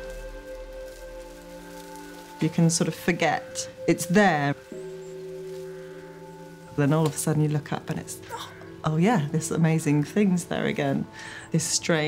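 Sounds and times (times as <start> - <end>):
soft music of held tones: 0.0 - 12.0.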